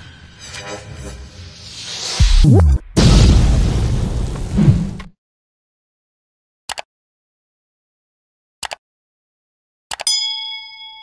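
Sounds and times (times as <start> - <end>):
bright bell ding: 10.0 - 11.0.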